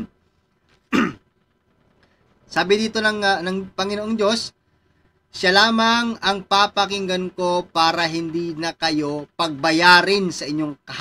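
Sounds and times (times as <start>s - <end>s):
man clearing his throat: 0.9s - 1.3s.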